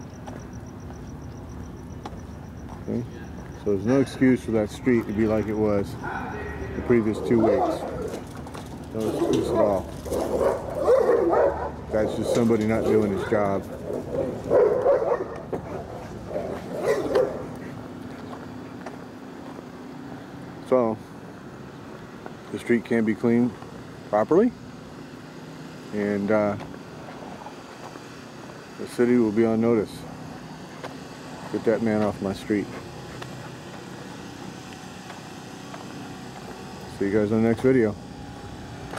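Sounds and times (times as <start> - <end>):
faint steady hum: 0.0 - 38.9
dog barking: 7.2 - 8.2, 9.0 - 17.6.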